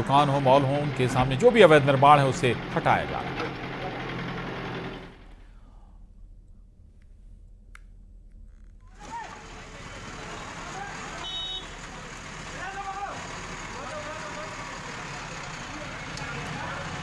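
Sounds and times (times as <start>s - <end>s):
demolition machine engine: 0.0s - 5.4s, 9.0s - 17.0s
people shouting: 8.9s - 17.0s.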